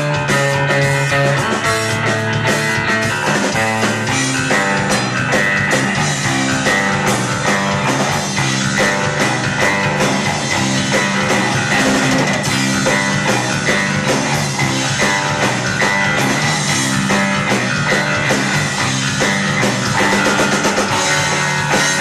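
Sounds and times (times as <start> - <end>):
drum kit: 0.0 - 22.0
electric bass guitars: 0.0 - 22.0.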